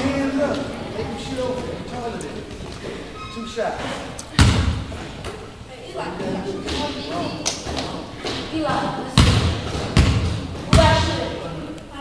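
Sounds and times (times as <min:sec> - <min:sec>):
basketball bouncing on wood floor: 0:09.2 - 0:11.2.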